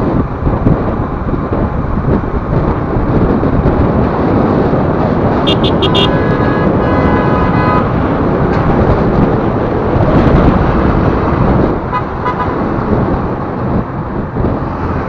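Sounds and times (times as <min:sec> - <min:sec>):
road and wind noise: 0:00.0 - 0:15.0
vehicle horn: 0:05.4 - 0:08.0, 0:11.9 - 0:12.6
short horn beeps: 0:05.5 - 0:07.8.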